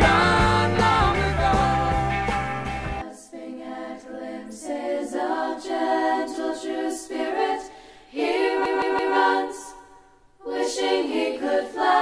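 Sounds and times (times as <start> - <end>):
voices singing a cappella: 0.0 - 12.0.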